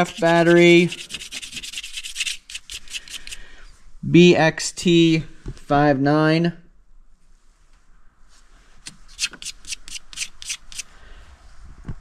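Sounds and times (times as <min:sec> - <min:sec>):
scratchy rubbing strokes: 0:00.0 - 0:03.5, 0:08.3 - 0:10.9.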